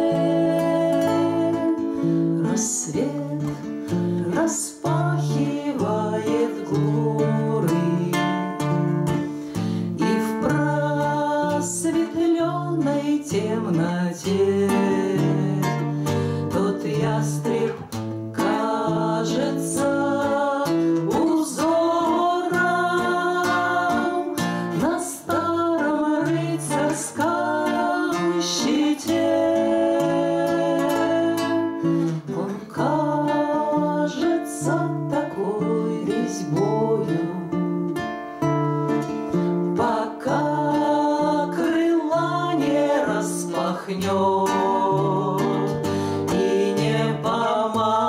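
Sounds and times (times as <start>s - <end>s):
acoustic guitars: 0.0s - 48.0s
two women singing in duet: 0.0s - 48.0s.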